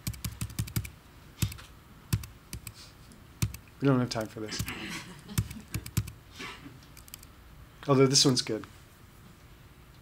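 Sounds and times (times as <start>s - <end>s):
keyboard keys clicking: 0.0s - 2.8s, 3.4s - 6.2s, 7.0s - 7.3s.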